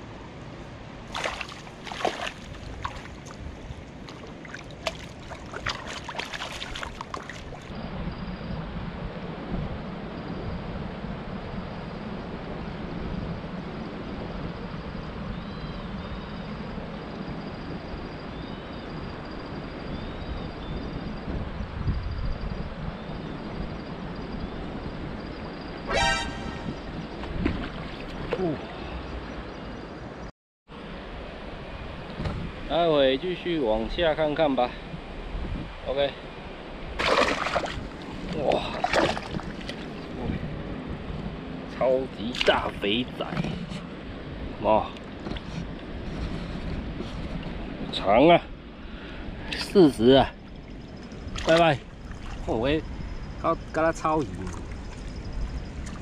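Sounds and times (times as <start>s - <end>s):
river water washing: 0.7s - 7.7s, 36.6s - 46.1s, 49.5s - 52.8s
fish splashing in a net: 1.1s - 3.4s, 4.1s - 7.7s, 37.0s - 39.9s
horn toot: 25.9s - 27.0s.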